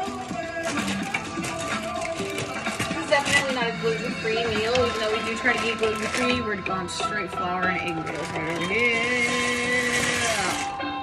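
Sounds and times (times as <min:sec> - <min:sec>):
dry noodles pouring into pot: 0:04.4 - 0:10.7.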